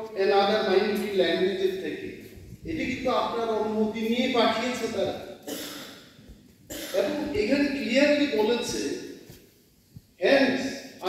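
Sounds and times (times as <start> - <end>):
person speaking: 0.0 - 5.4, 6.8 - 9.0, 10.2 - 10.8.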